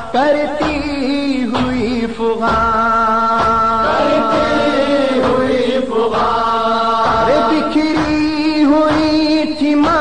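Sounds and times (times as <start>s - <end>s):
person chanting over loudspeaker: 0.0s - 10.0s.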